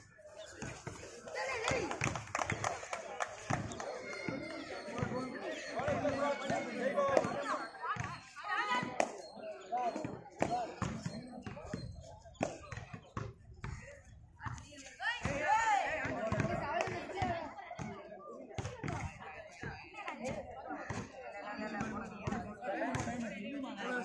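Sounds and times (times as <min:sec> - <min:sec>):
sharp claps and slaps: 0:01.2 - 0:05.1.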